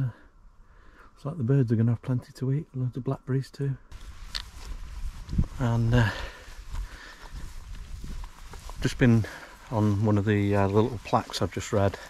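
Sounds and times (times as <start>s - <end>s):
footsteps on grass: 3.9s - 12.0s
person speaking: 5.4s - 6.5s, 8.8s - 12.0s.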